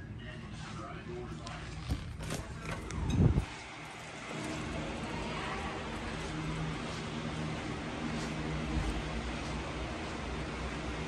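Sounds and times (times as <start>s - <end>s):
door creaking: 1.6s - 3.4s.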